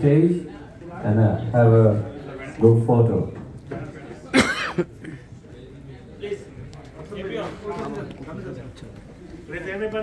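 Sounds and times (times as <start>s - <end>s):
people talking in a room: 0.0s - 10.0s.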